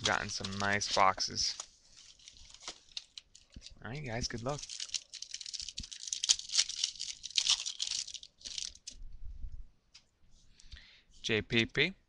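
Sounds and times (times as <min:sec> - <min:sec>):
foil wrapper tearing and crinkling: 0:00.0 - 0:09.0
rustling and handling of cards: 0:00.0 - 0:09.1.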